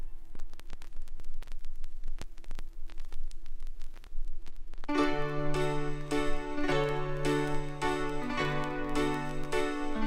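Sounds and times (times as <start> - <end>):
faint steady hum: 0.0 - 10.0
vinyl clicks and pops: 0.0 - 10.0
vinyl surface hiss: 0.0 - 10.0.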